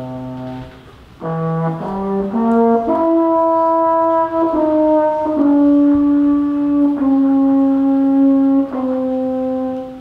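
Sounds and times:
baritone horn held notes: 0:00.0 - 0:10.0.

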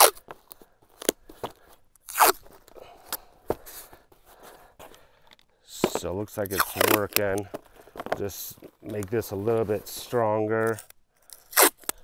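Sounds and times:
tape ripping off roll: 0:00.0 - 0:00.2, 0:02.0 - 0:02.7, 0:06.5 - 0:07.4, 0:11.3 - 0:12.0.

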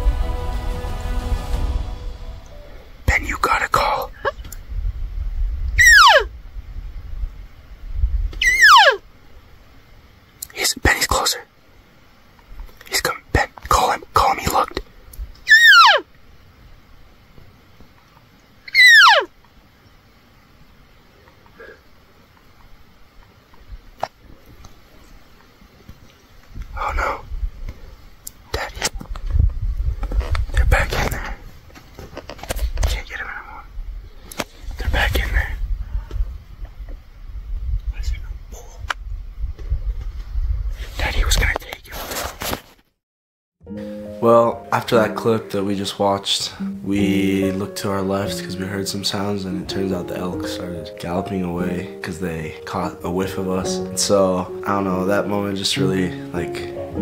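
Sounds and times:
wind rumble on microphone: 0:03.0 - 0:08.5, 0:25.8 - 0:42.0
hushed voices: 0:03.1 - 0:04.4
elk mews: 0:05.8 - 0:06.3, 0:08.4 - 0:09.0, 0:15.4 - 0:16.1, 0:18.7 - 0:19.3
microphone handling noise: 0:28.7 - 0:33.0.

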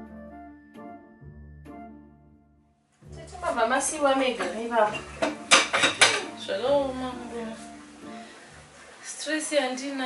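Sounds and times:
voice: 0:03.2 - 0:05.0, 0:06.4 - 0:07.6, 0:09.1 - 0:10.0.

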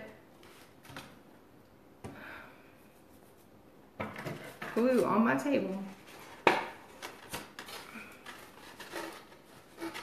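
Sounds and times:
paper rustling: 0:00.3 - 0:01.2, 0:04.3 - 0:10.0.

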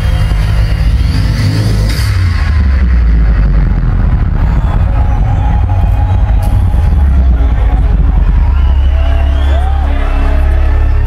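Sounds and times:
deep rumbling intro sound: 0:00.0 - 0:11.0.

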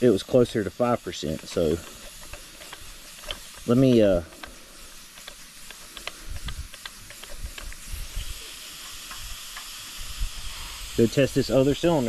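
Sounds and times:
compressed air hissing: 0:00.0 - 0:12.0.

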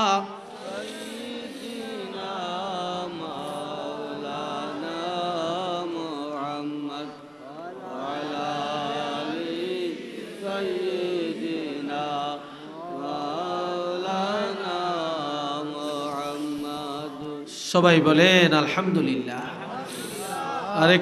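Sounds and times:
man chanting: 0:00.0 - 0:21.0.

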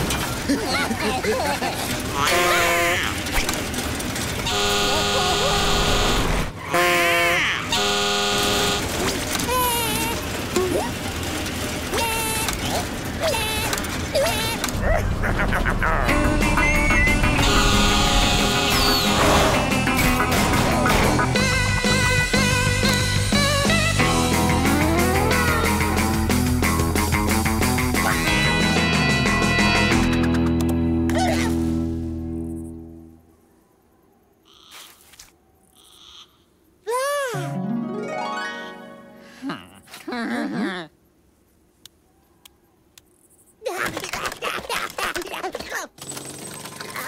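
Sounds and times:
cartoon cry rising and falling: 0:09.4 - 0:11.0, 0:11.9 - 0:16.2, 0:24.8 - 0:25.9, 0:36.8 - 0:38.8
music: 0:16.0 - 0:33.2, 0:37.4 - 0:39.4.

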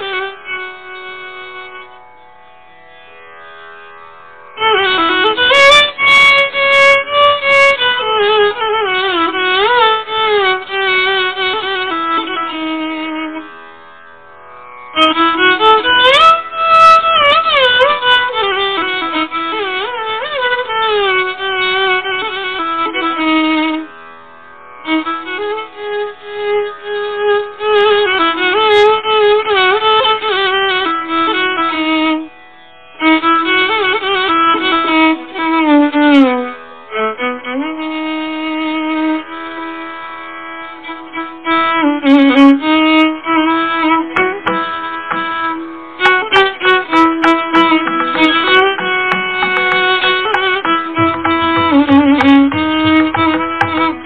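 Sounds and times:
violin melody with sliding ornaments: 0:00.0 - 0:02.0, 0:04.6 - 0:13.8, 0:14.9 - 0:23.9, 0:33.0 - 0:54.0
mridangam drum strokes: 0:43.8 - 0:54.0.

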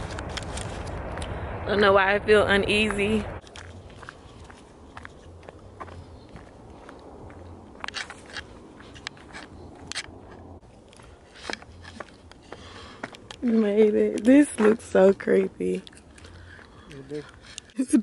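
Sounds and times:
footsteps on dry leaves: 0:03.4 - 0:17.8.

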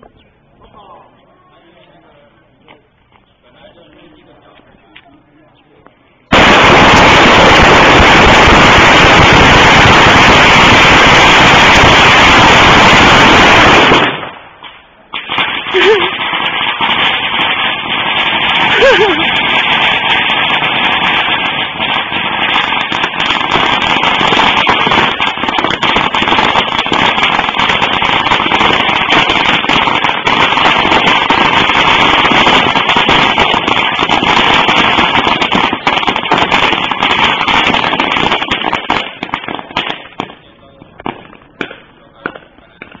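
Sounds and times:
firecrackers crackling: 0:02.7 - 0:43.0.

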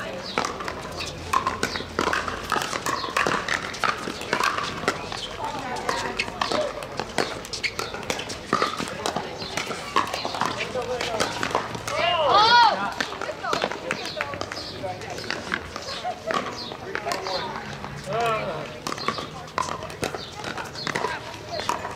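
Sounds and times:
paddles striking plastic balls: 0:00.0 - 0:21.9
players' voices: 0:00.0 - 0:21.9.

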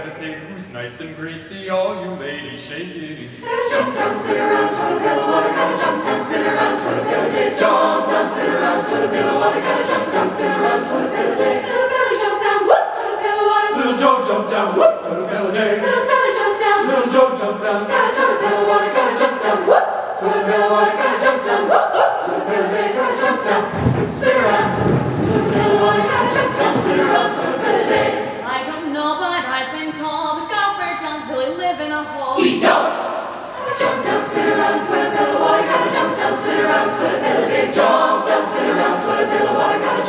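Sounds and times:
choir singing: 0:00.0 - 0:28.8, 0:32.4 - 0:40.0.

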